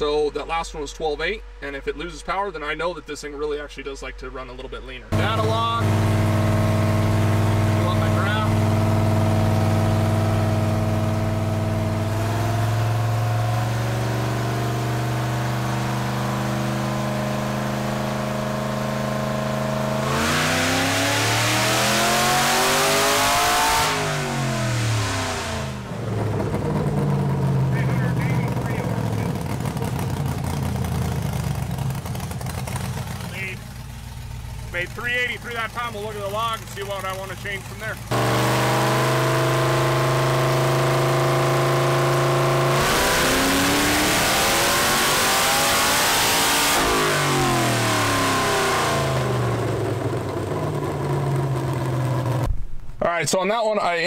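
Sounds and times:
car engine revving: 0:05.1 - 0:52.5.

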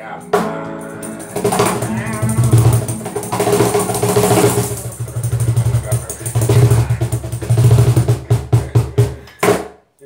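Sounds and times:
acoustic guitar strumming: 0:00.0 - 0:08.3.

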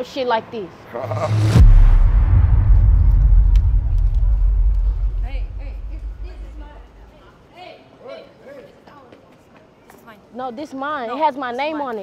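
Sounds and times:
loud deep rumble: 0:01.0 - 0:07.1.

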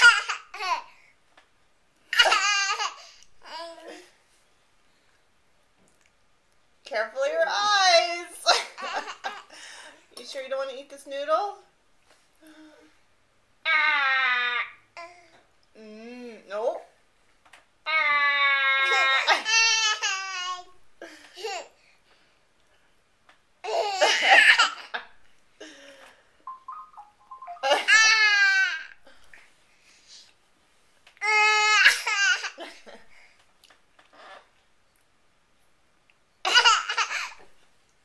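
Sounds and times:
toddler laughing: 0:27.6 - 0:28.9.

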